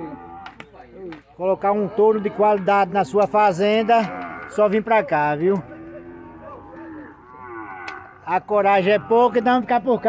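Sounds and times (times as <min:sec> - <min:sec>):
cattle mooing: 0:00.0 - 0:00.6, 0:02.2 - 0:10.0.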